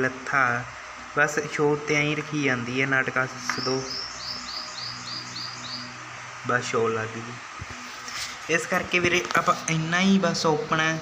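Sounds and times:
small bird chirping: 3.4s - 6.0s.

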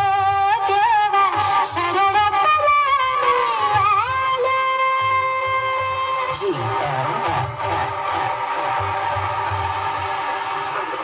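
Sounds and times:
loud music through speakers: 0.0s - 11.0s.

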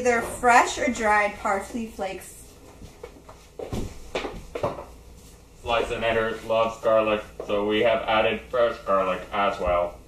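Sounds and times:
soft footsteps and shuffling: 1.5s - 6.8s.

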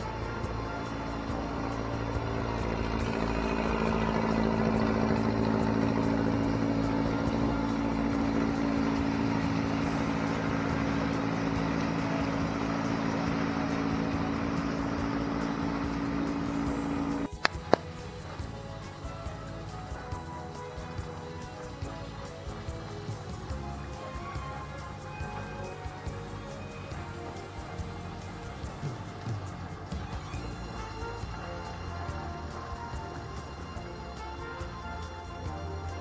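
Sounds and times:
boat engine running: 0.0s - 36.0s.

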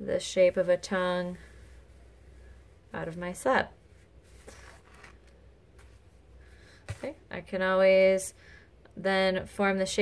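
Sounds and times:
low room hum: 0.0s - 10.0s
light scratches: 3.1s - 6.1s.

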